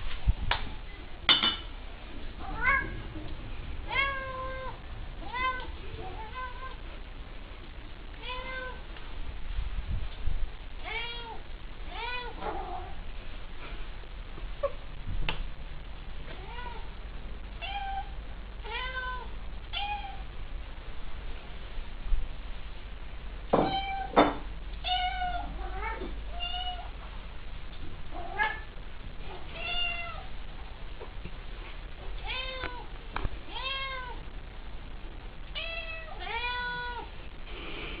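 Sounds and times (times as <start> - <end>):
low rumble: 0.0 - 18.7
cat meowing: 29.5 - 30.3.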